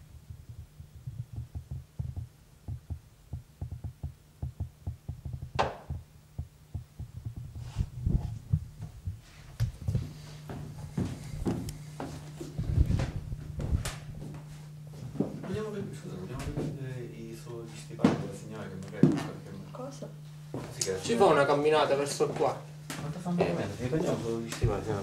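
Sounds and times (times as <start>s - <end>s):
steady low hum: 0.0s - 25.0s
scattered knocks and clicks: 0.2s - 7.6s.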